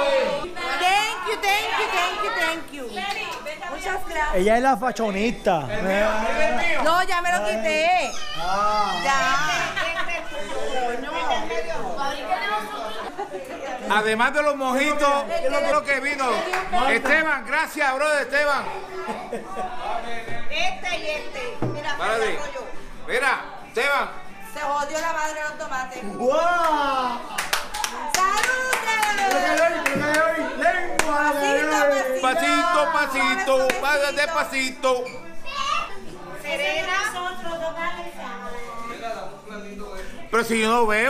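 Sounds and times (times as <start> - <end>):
people chattering: 0.0 - 41.0
hand clapping: 26.6 - 30.3, 30.9 - 31.3.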